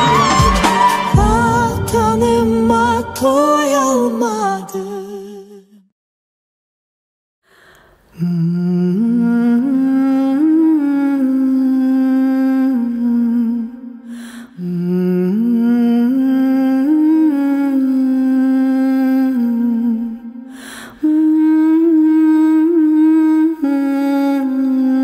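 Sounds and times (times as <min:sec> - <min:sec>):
woman humming a slow melody: 0:08.2 - 0:13.7, 0:21.0 - 0:25.0.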